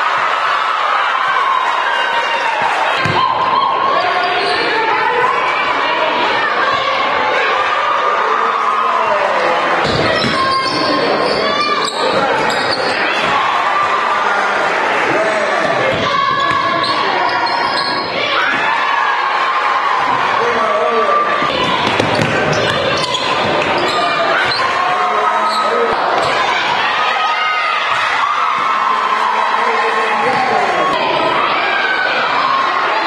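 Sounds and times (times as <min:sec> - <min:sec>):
voices echoing in hall: 0:00.0 - 0:33.0
sneaker squeaks: 0:03.9 - 0:04.8, 0:09.8 - 0:13.3, 0:15.9 - 0:18.2, 0:21.4 - 0:24.8, 0:25.4 - 0:26.5.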